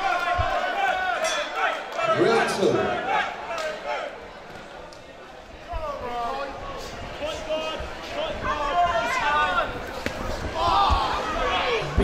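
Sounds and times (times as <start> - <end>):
people shouting: 10.5 - 12.0.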